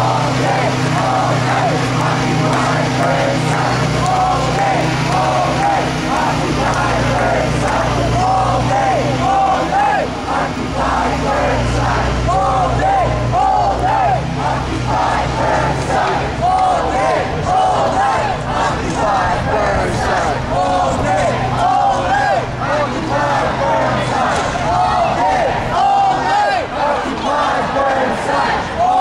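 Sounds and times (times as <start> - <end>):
low steady hum: 0.0 - 27.6
crowd chanting: 0.0 - 29.0.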